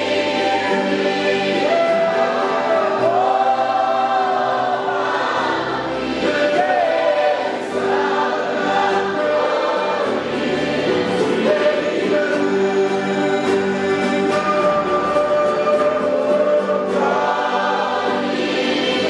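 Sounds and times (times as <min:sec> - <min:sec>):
acoustic guitars strummed: 0:00.0 - 0:19.0
men singing a worship song: 0:00.0 - 0:19.0.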